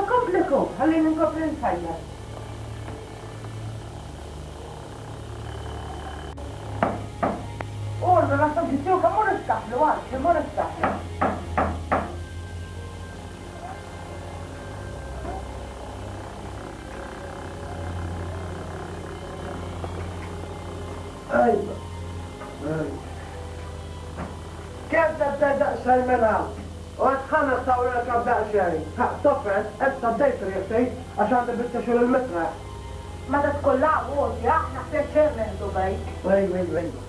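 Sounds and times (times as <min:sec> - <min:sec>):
constant hiss: 0:00.0 - 0:37.0
low electrical hum: 0:00.0 - 0:37.0.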